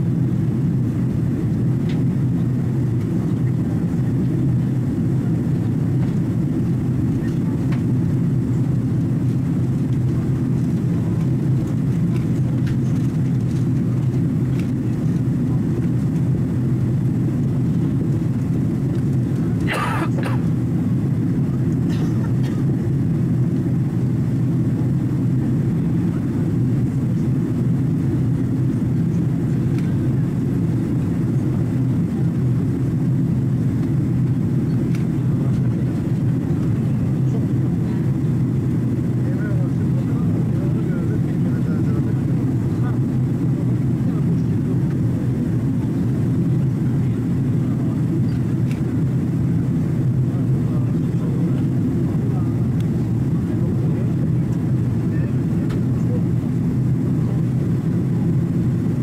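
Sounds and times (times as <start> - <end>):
airliner cabin engine rumble: 0.0 - 59.0.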